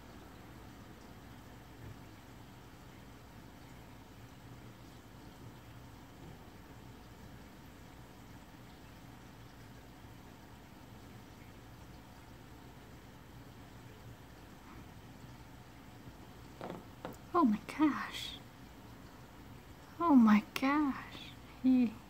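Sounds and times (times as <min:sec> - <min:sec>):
aquarium equipment hum and hiss: 0:00.0 - 0:22.0.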